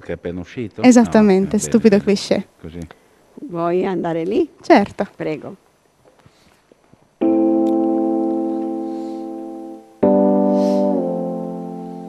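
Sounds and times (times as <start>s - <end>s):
held keyboard chord: 7.2s - 12.0s.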